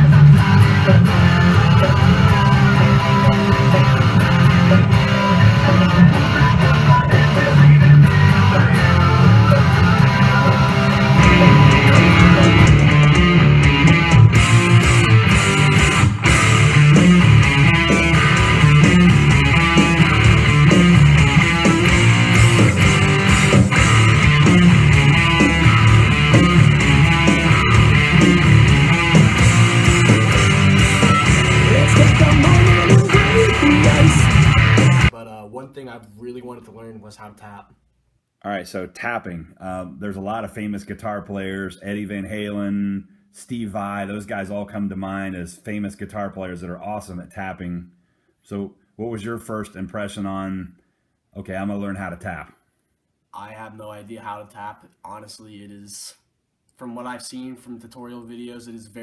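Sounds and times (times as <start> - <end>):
electric guitar music: 0.0 - 35.1
low bass: 0.0 - 35.1.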